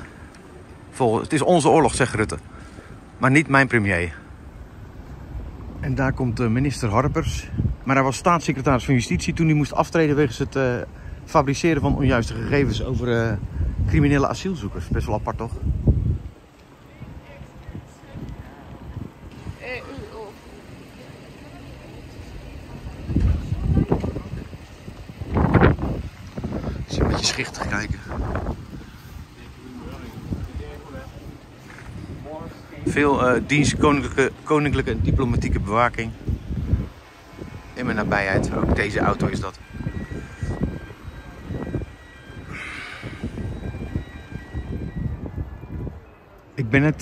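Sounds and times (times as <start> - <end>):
car engine and tyres rumbling: 0.0 - 47.0.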